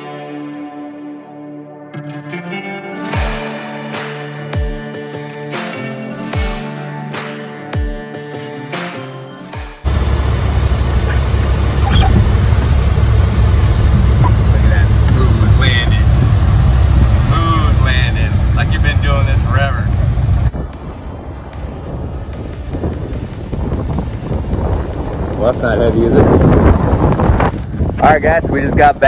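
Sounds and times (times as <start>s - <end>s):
guitar music: 0.0s - 24.4s
aircraft engine drone: 9.8s - 27.6s.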